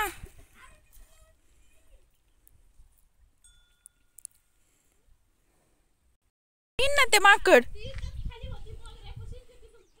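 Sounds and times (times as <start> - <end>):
faint high ringing tone: 3.4 - 4.7.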